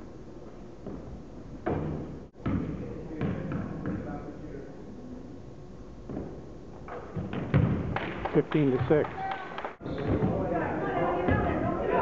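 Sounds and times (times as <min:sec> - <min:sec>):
basketball bouncing on hardwood: 0:07.2 - 0:08.2.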